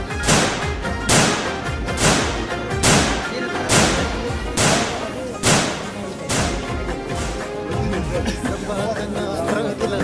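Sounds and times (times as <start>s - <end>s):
background music: 0.0s - 10.0s
loud sharp cracks: 0.1s - 6.8s.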